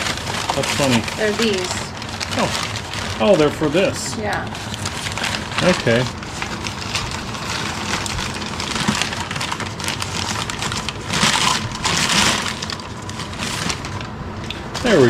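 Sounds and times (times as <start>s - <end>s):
packing paper crumpling: 0.0s - 15.0s.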